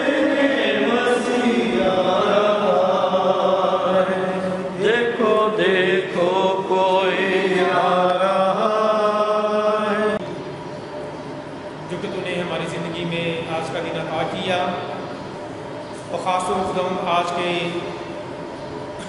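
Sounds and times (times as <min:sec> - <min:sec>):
voices singing a hymn: 0:00.0 - 0:10.2.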